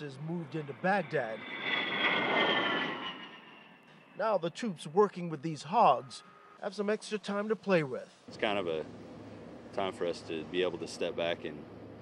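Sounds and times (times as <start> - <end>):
jet engine roar and whine: 0.0 - 4.9.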